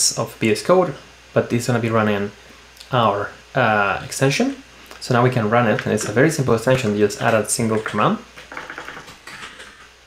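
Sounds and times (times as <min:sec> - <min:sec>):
computer keyboard typing: 0:07.8 - 0:09.9.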